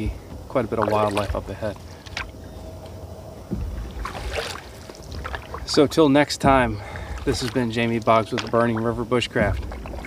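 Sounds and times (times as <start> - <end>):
wind rumble on microphone: 0.0 - 10.0
paddle stroking through water: 3.5 - 10.0.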